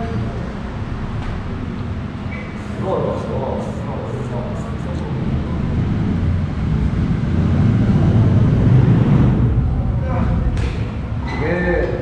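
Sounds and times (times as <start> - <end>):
steady low rumbling: 0.0 - 12.0.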